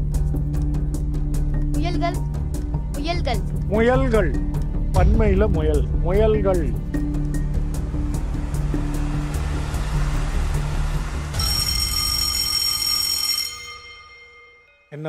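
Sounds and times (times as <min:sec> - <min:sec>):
low bass bed: 0:00.0 - 0:11.4.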